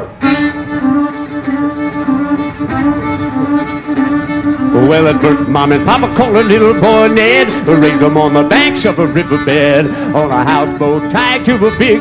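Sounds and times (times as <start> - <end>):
faint fiddle notes: 0.0 - 12.0
fiddle holding long note: 0.0 - 12.0.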